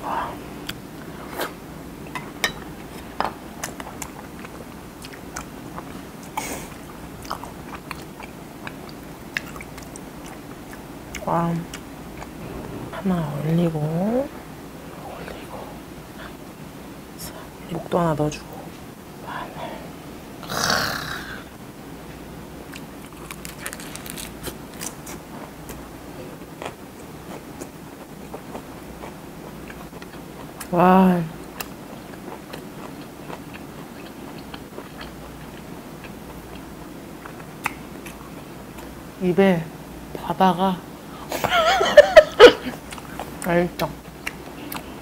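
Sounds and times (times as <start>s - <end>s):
chewing food: 2.9s - 12.6s, 26.5s - 30.7s, 31.3s - 38.9s, 42.7s - 45.0s
crisp lettuce bite: 23.0s - 25.2s.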